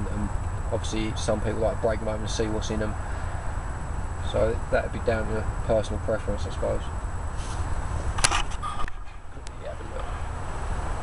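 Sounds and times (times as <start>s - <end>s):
low background rumble: 0.0s - 11.0s
sharp click: 8.2s - 9.6s.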